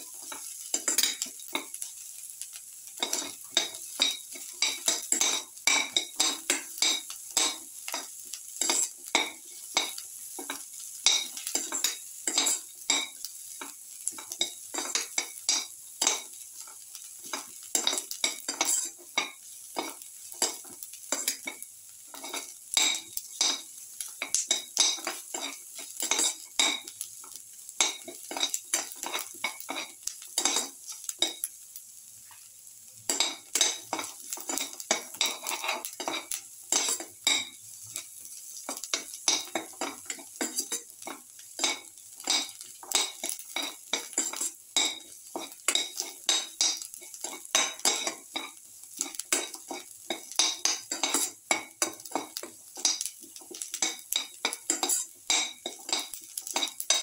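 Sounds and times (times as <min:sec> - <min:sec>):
onions frying in oil sizzle: 0:00.0 - 0:57.0
spatula scraping metal pan: 0:17.3 - 0:19.0, 0:33.1 - 0:38.1, 0:54.5 - 0:57.0.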